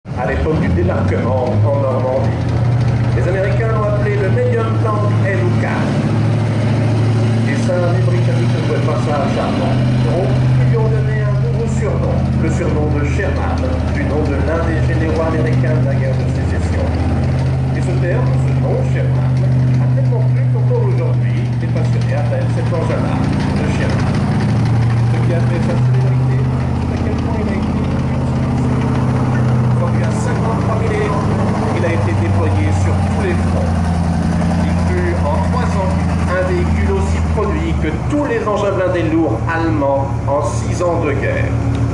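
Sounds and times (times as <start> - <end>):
tank engine droning: 0.0 - 41.9
voices: 0.1 - 41.9.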